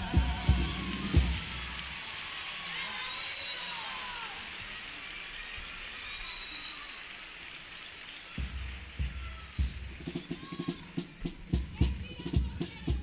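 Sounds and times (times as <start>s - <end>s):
bass drum beating: 0.0s - 1.6s
audience applauding: 0.0s - 11.4s.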